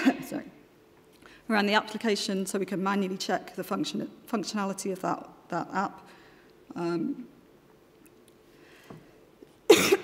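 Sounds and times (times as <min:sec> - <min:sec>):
woman coughing into microphone: 0:09.7 - 0:10.0.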